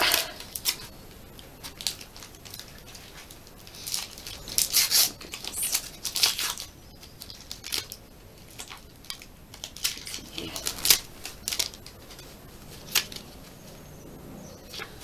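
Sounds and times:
wrapper tearing and crinkling: 0.0s - 13.4s.

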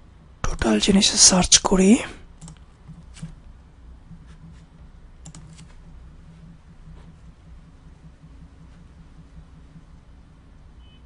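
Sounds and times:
steady low hum: 0.0s - 11.0s
faint computer clicks: 2.4s - 3.4s, 5.2s - 5.8s.

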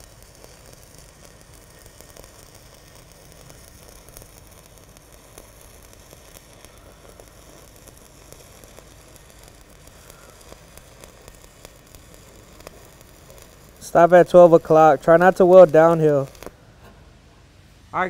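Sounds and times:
welding arc hissing and crackling: 0.0s - 17.0s.

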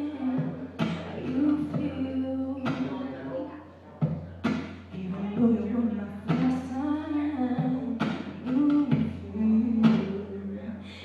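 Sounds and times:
woman singing: 0.0s - 3.3s, 4.8s - 11.0s
acoustic guitar strumming: 0.0s - 11.0s.

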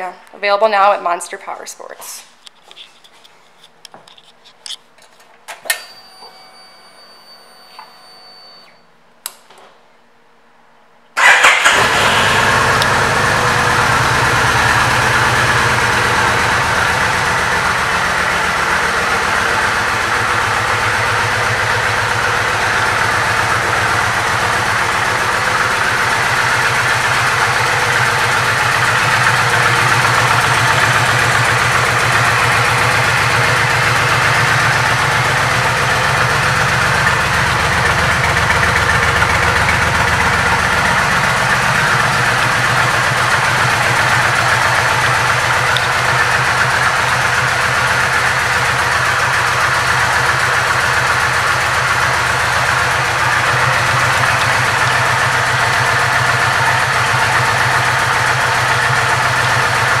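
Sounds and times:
motorcycle engine idling: 11.2s - 60.0s.

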